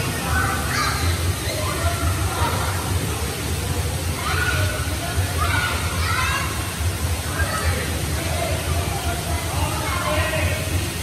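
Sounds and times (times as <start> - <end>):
water splashing and spraying: 0.0 - 11.0.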